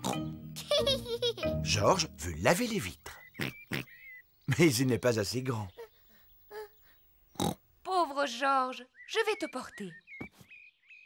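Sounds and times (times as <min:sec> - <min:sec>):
woman speaking: 0:07.9 - 0:10.0.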